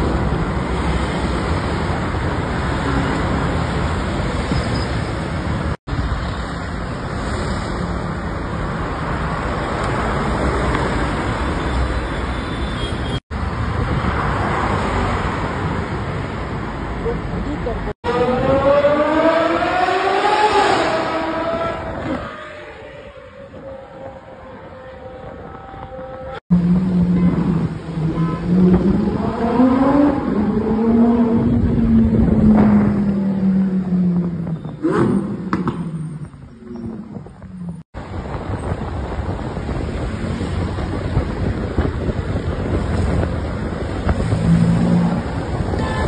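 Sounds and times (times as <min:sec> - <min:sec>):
road and traffic noise: 0:00.0 - 0:46.0.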